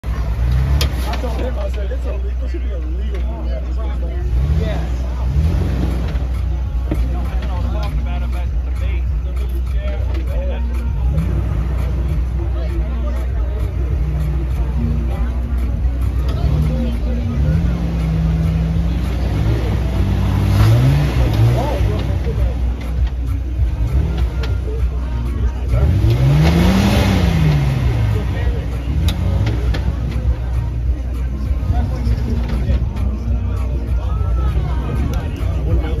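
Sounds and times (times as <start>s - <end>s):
engine revving: 0.0s - 2.0s, 3.2s - 36.0s
steady low rumble: 0.0s - 36.0s.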